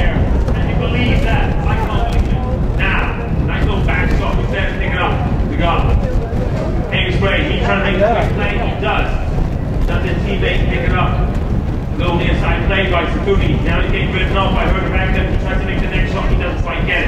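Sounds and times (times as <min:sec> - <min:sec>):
man talking: 0:00.0 - 0:06.0, 0:06.9 - 0:09.3, 0:09.9 - 0:11.3, 0:12.0 - 0:17.0
steady low rumble: 0:00.0 - 0:17.0.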